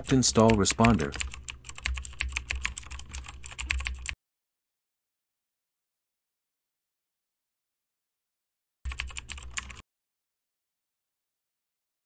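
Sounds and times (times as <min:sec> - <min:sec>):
keyboard typing: 0:00.0 - 0:04.2, 0:08.9 - 0:09.8.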